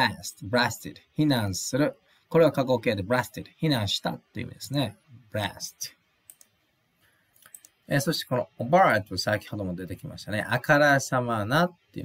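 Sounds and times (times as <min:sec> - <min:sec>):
computer mouse clicks: 0:06.2 - 0:06.6, 0:07.4 - 0:07.8.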